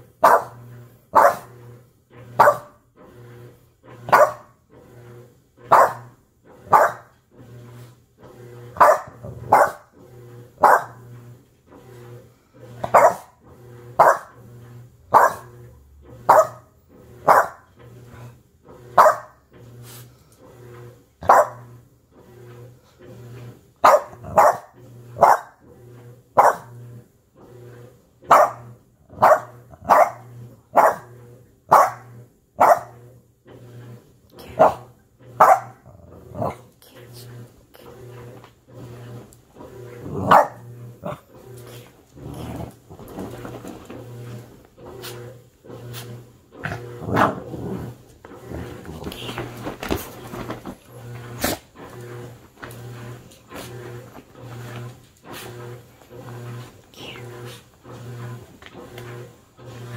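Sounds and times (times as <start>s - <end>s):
dog barking: 0.2s - 1.5s, 2.4s - 2.8s, 4.1s - 4.5s, 5.7s - 6.1s, 6.7s - 7.1s, 8.8s - 9.9s, 10.6s - 11.0s, 12.8s - 13.4s, 14.0s - 14.4s, 15.1s - 15.6s, 16.2s - 17.7s, 19.0s - 19.4s, 21.2s - 21.7s, 23.8s - 25.6s, 26.4s - 26.7s, 28.3s - 31.1s, 31.7s - 33.0s, 34.5s - 35.8s, 40.2s - 40.6s.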